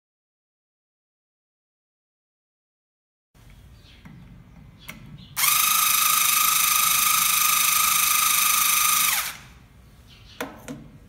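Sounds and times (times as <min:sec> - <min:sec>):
electric screwdriver whining: 0:05.4 - 0:09.5.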